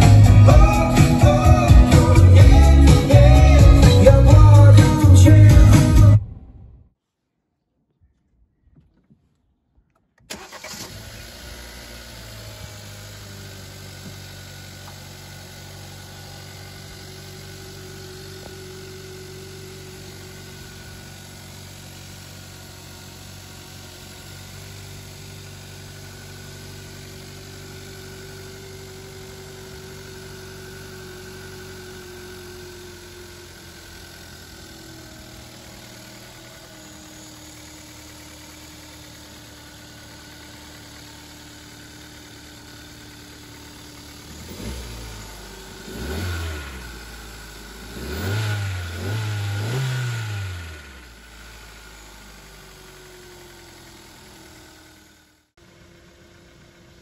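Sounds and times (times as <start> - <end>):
car engine idling and revving: 0.0 - 6.8, 9.9 - 57.0.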